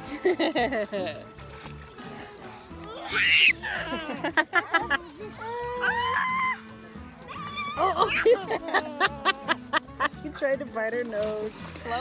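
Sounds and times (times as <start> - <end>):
background music: 0.0 - 12.0
child squealing: 3.0 - 4.2, 5.4 - 6.6
child giggling and laughing: 3.2 - 5.2, 7.9 - 9.9.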